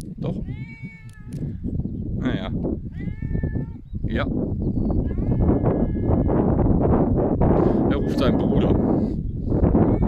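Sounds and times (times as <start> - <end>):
cat meowing: 0.4 - 1.5, 2.9 - 3.9, 5.0 - 6.4.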